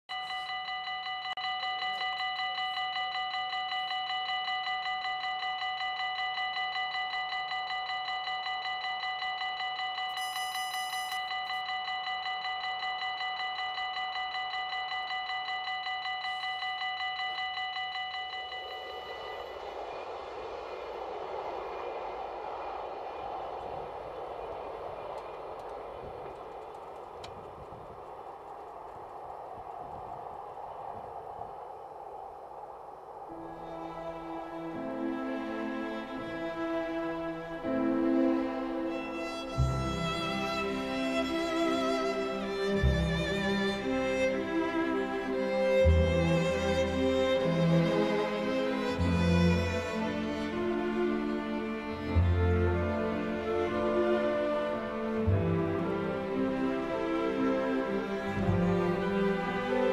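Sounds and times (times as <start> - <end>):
level crossing warning bell: 0.1 - 19.8
diesel train passing: 0.1 - 59.9.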